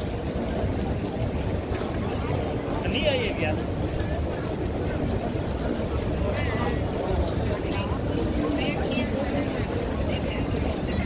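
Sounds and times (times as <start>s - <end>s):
crowd hubbub: 0.0s - 11.0s.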